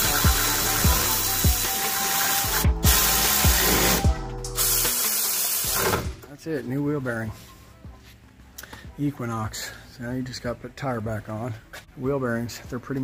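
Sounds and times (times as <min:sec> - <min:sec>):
power tool running: 0:00.0 - 0:06.2
background music with steady beat: 0:00.0 - 0:13.0.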